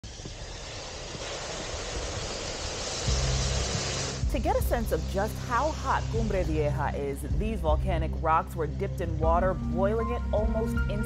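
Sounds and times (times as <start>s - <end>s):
hot rock hissing in water: 0.0s - 6.8s
low steady drone: 0.0s - 11.0s.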